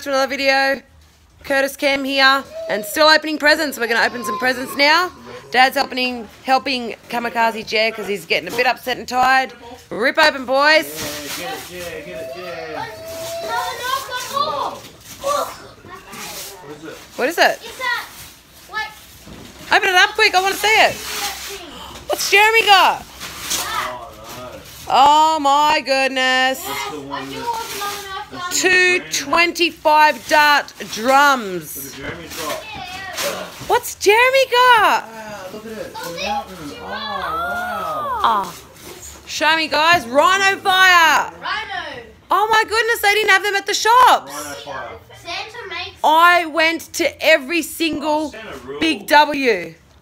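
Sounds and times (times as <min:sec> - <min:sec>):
children's excited voices and shouts: 0:03.9 - 0:05.2, 0:12.2 - 0:16.2, 0:36.2 - 0:38.7.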